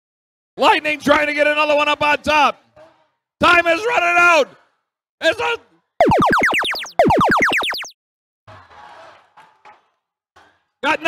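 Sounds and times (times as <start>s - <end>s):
electronic tones gliding down: 6.0s - 7.9s.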